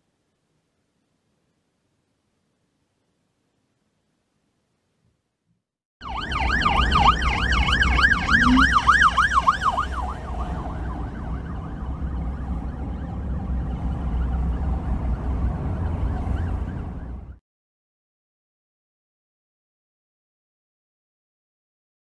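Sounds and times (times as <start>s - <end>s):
police siren yelping: 6.0s - 17.4s.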